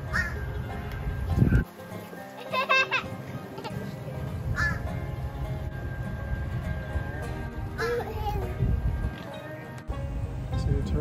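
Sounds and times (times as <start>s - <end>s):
background music: 0.0s - 11.0s
crow cawing: 0.1s - 0.4s, 4.5s - 4.9s, 7.8s - 8.1s.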